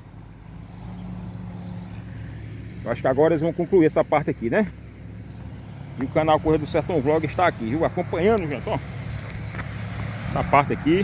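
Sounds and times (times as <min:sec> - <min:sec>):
diesel engine droning: 0:00.0 - 0:11.0
man speaking: 0:02.8 - 0:04.8, 0:06.0 - 0:08.9, 0:10.2 - 0:11.0.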